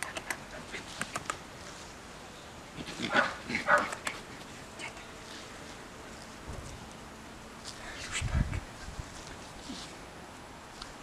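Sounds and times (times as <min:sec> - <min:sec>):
small dog barking: 0:03.1 - 0:04.0.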